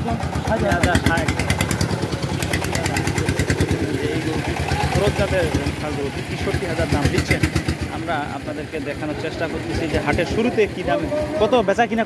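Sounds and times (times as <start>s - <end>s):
small engine idling: 0.0s - 11.6s
people talking: 0.0s - 12.0s.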